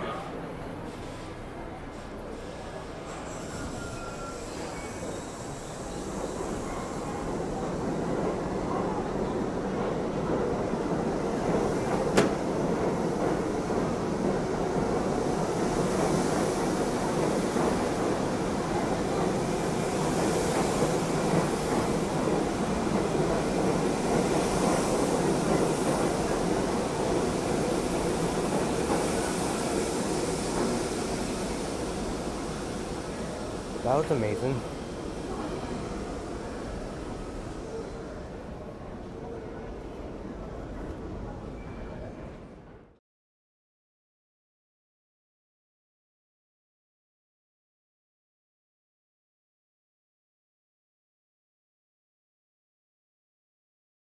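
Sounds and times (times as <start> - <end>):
subway train passing: 0.0 - 43.0.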